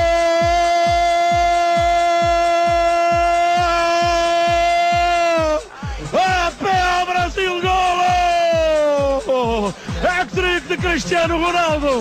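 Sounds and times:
commentator shouting: 0.0 - 12.0
music with steady kick drum: 0.0 - 12.0.

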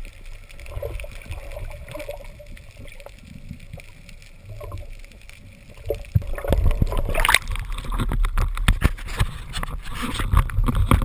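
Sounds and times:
faint clicks and crackles: 0.0 - 11.0
underwater water rumble: 0.0 - 11.0.

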